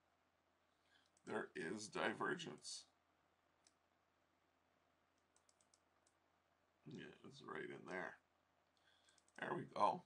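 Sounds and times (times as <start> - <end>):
faint clicks: 5.2 - 6.2, 8.7 - 9.5.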